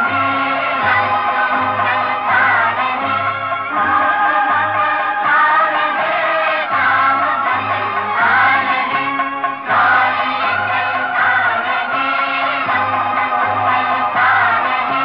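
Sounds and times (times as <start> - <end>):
group singing old film song: 0.0 - 15.0
musical accompaniment: 0.0 - 15.0.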